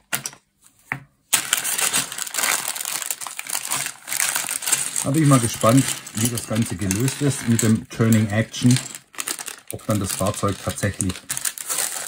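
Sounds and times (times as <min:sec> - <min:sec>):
plastic bags crinkling: 0:01.3 - 0:12.0.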